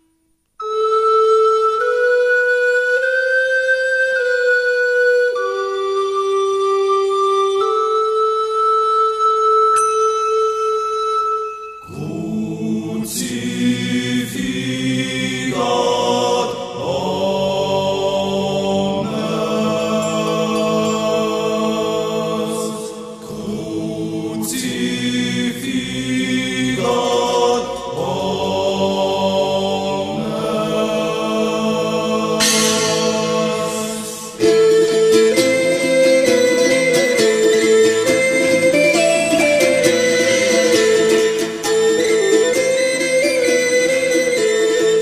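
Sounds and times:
held woodwind note: 0.6s - 12.2s, 32.4s - 45.0s
choir singing slow chords: 11.8s - 38.6s.

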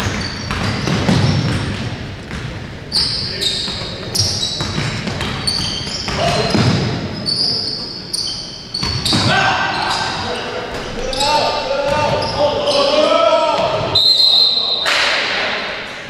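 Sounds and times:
basketball bouncing: 0.0s - 2.6s, 3.7s - 7.0s
sneakers squeaking: 0.0s - 15.4s
players calling out: 2.9s - 15.6s.

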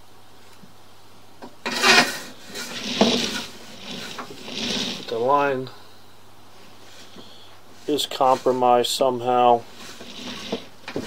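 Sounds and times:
low electrical hum: 0.0s - 11.0s
cable scraping in drain: 1.6s - 5.4s, 9.7s - 11.0s.

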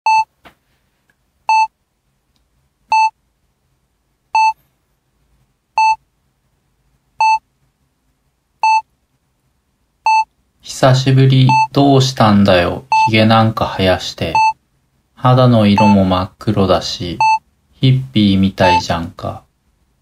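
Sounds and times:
short electronic beeps: 4.4s - 4.6s, 11.5s - 11.8s, 12.9s - 13.1s, 14.4s - 14.6s, 15.8s - 16.0s, 17.2s - 17.4s.

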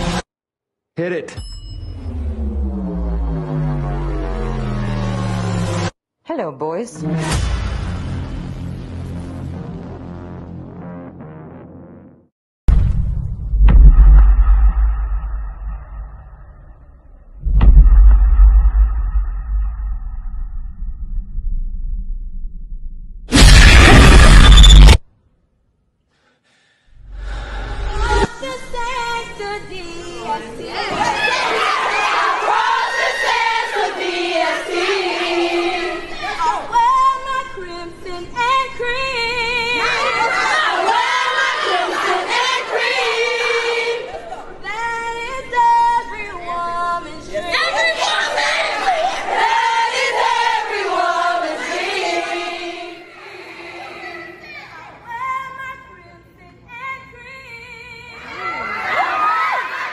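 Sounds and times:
deep cinematic boom hits: 1.9s - 5.9s, 7.1s - 12.0s, 12.7s - 25.0s
woman singing with vibrato: 27.9s - 30.8s, 33.8s - 48.4s, 55.2s - 58.4s
women singing together: 28.2s - 54.1s.

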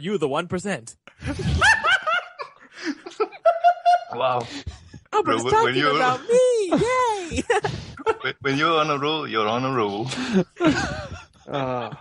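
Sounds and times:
people laughing: 1.2s - 4.9s, 5.5s - 9.1s, 9.8s - 12.0s.

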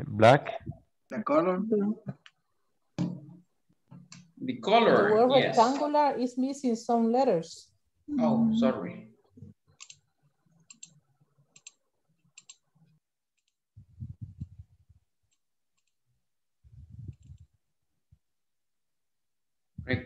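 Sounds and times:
mouse and keyboard clicks: 11.6s - 11.8s, 12.4s - 12.6s
low muffled bumps: 13.8s - 14.9s.

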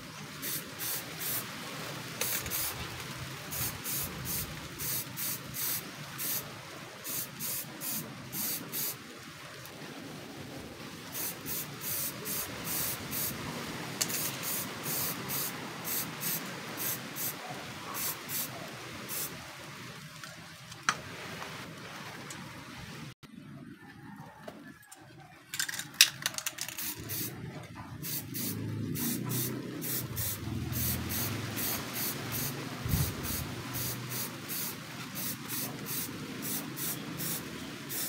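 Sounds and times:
aerosol spray can hissing: 0.4s - 1.4s, 2.2s - 2.8s, 3.5s - 6.4s, 7.1s - 9.0s, 11.2s - 13.4s, 14.0s - 17.4s, 26.7s - 27.3s, 28.0s - 38.0s.

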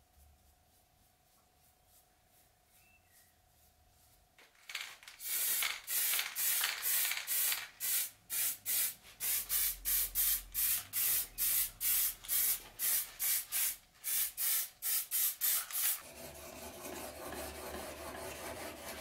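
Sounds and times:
short bursts of spray: 5.2s - 16.0s.

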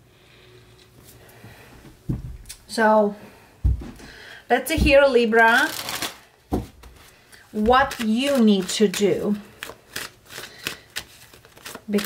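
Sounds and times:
cards being shuffled: 6.8s - 12.0s.

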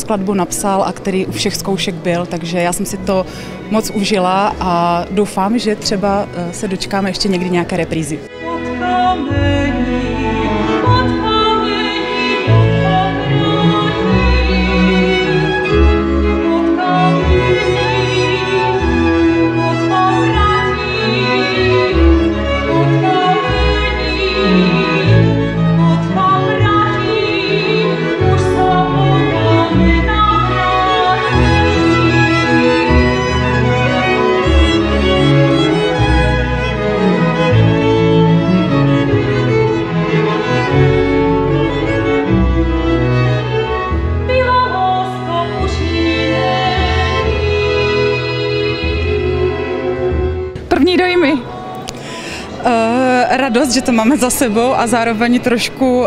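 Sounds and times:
cellos and double bass: 0.0s - 56.0s
mezzo-soprano singing: 0.0s - 56.0s
string orchestra bowed chords: 0.0s - 56.0s
violins: 0.0s - 56.0s.

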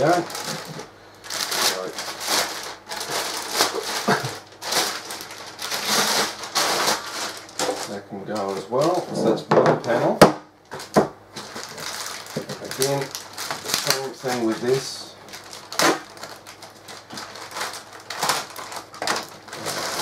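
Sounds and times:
plastic wrapping crinkling: 0.0s - 9.4s, 10.7s - 20.0s.

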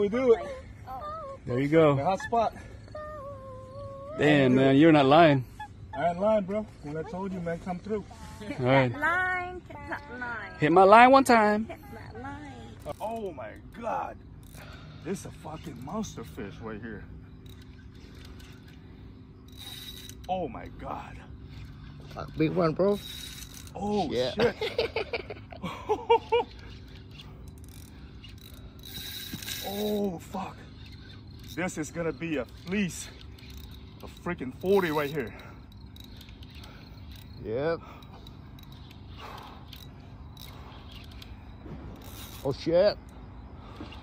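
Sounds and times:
fishing reel drag chirp: 0.0s - 44.0s
low steady hum: 0.0s - 44.0s.

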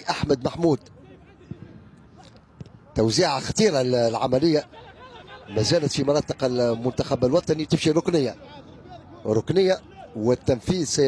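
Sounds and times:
faint stadium ambience: 0.0s - 11.0s.

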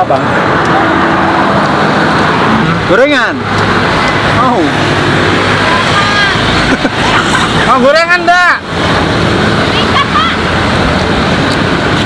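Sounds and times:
road traffic from passing cars: 0.0s - 12.0s.

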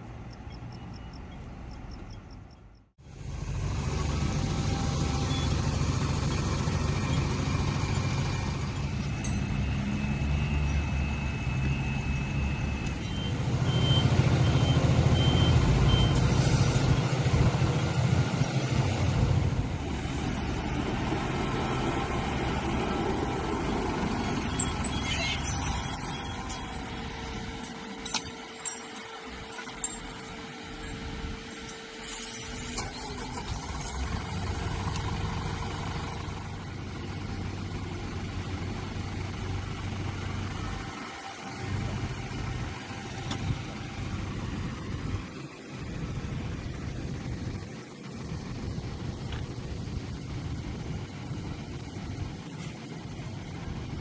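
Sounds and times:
diesel engines rumbling: 0.0s - 54.0s
high warning beeps: 7.0s - 16.3s, 23.7s - 27.7s.

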